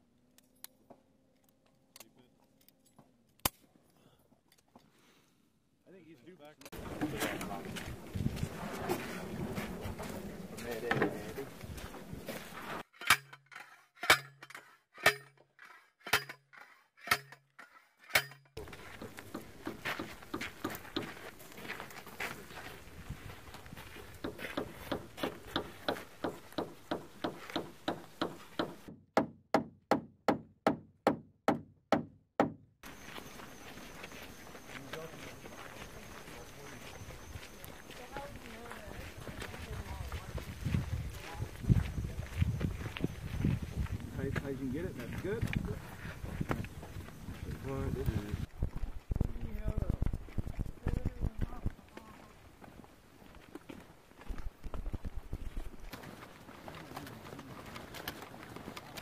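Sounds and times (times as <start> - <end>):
outdoor background noise: 0.0 - 59.0
metal strikes on steel picket: 13.0 - 13.4, 14.0 - 15.4, 16.1 - 16.4, 17.0 - 17.4, 18.1 - 18.5.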